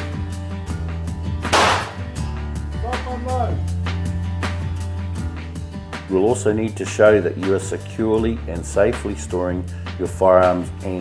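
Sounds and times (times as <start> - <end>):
background music: 0.0 - 11.0
pistol shot: 1.5 - 2.1.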